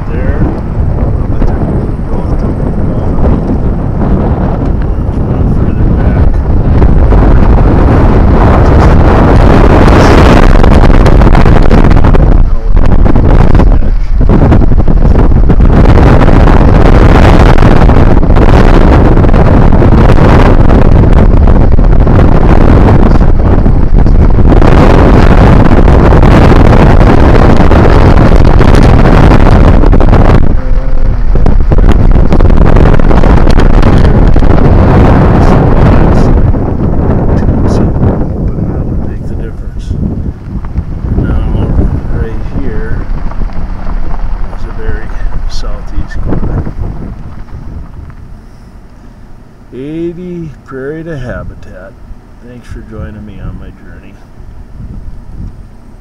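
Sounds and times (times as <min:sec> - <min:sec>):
vehicle road noise: 0:00.0 - 0:56.0
wind buffeting microphone: 0:00.0 - 0:56.0.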